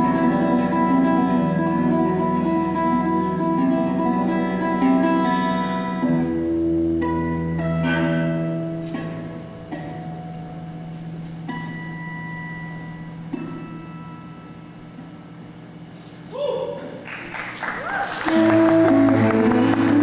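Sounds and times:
harp guitar plucked chords: 0:00.0 - 0:15.9, 0:18.3 - 0:20.0.

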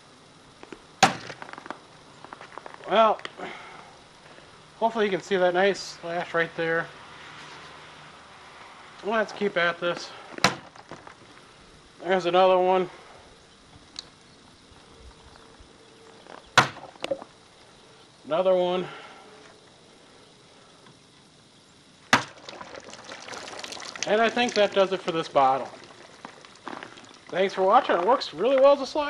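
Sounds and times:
faint ticks: 0:13.7 - 0:14.2.

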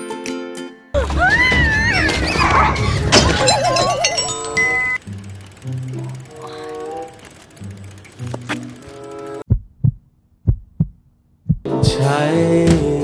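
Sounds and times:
heartbeat thumps: 0:09.5 - 0:12.0.

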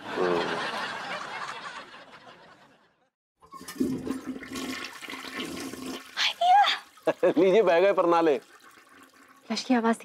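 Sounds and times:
toilet flushing: 0:03.4 - 0:10.0.

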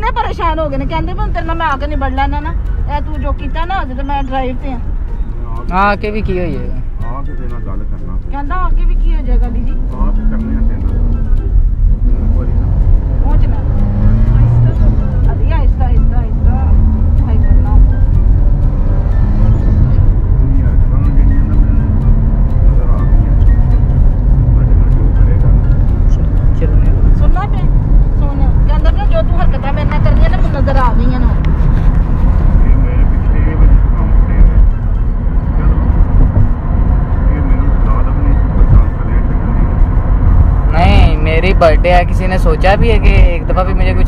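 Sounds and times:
car engine rumble: 0:00.0 - 0:44.0
road noise: 0:00.0 - 0:44.0.

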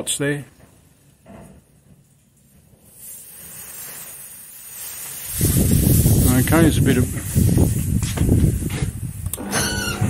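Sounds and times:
wind hissing: 0:02.8 - 0:10.0.

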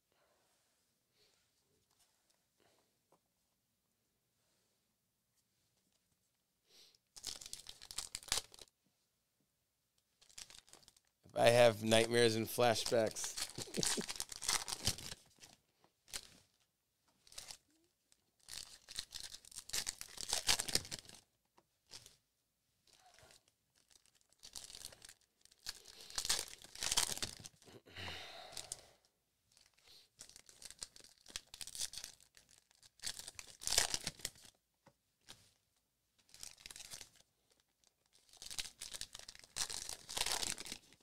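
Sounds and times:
foil wrappers tearing and crinkling: 0:07.2 - 0:08.6, 0:10.2 - 0:11.0, 0:12.8 - 0:15.2, 0:18.4 - 0:21.2, 0:23.4 - 0:27.6, 0:29.6 - 0:34.5, 0:36.3 - 0:37.2, 0:38.1 - 0:41.0.

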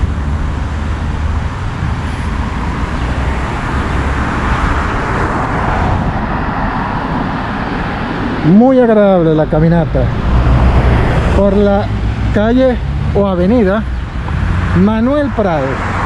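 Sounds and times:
low traffic rumble: 0:00.0 - 0:16.0
passing cars: 0:00.0 - 0:16.0.

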